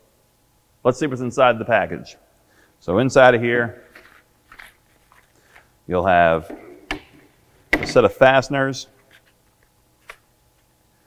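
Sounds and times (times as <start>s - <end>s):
man speaking: 2.8s - 3.9s, 5.9s - 6.5s, 7.8s - 8.9s.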